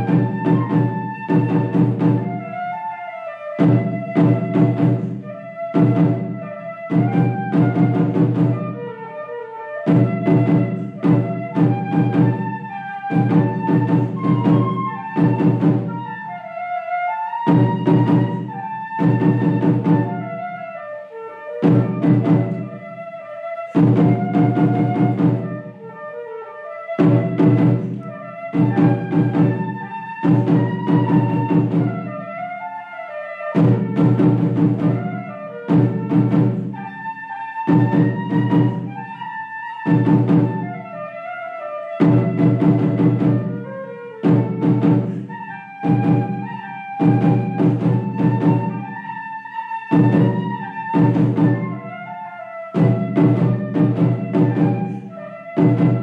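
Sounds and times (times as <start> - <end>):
drum strokes with sticks: 0.0 - 2.8, 3.6 - 9.0, 9.9 - 16.4, 17.3 - 20.6, 21.5 - 26.0, 26.9 - 32.6, 33.6 - 41.0, 42.0 - 49.2, 49.9 - 52.1, 52.8 - 56.0
flute melody: 0.0 - 56.0.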